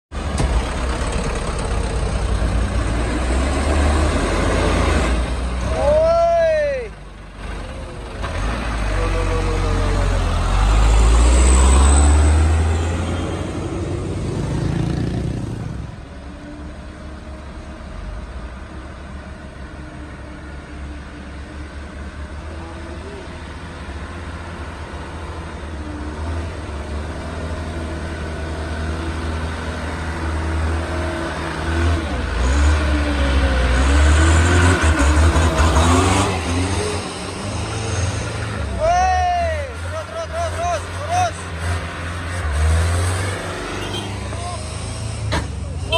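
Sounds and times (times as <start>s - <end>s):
diesel truck engines labouring uphill: 0.1s - 45.9s.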